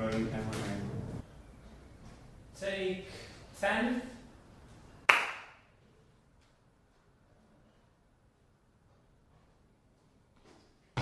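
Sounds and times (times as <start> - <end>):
slate clap: 5.1 - 5.6.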